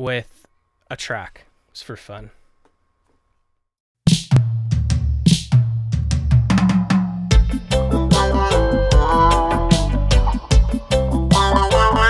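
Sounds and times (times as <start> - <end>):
drum kick and snare hits: 4.1 - 11.4
reggae backing track: 6.4 - 12.0
low bass line: 7.3 - 12.0.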